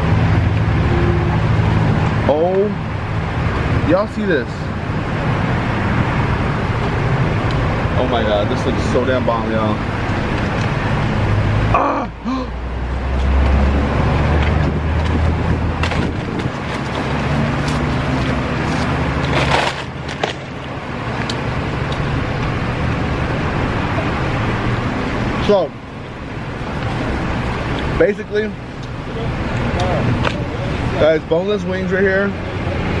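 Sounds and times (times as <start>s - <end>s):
road traffic rumble: 0.0s - 33.0s.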